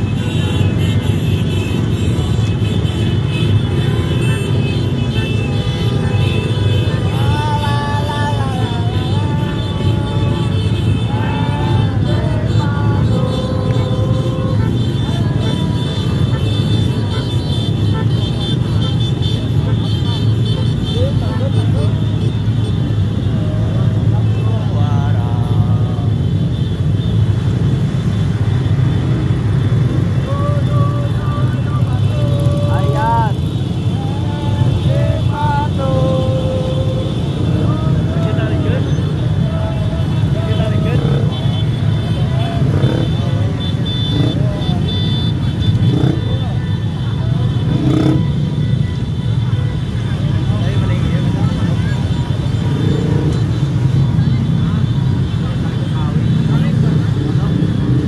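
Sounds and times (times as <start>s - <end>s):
motorcycle engines rumbling: 0.0s - 58.0s
voices calling out: 0.0s - 58.0s.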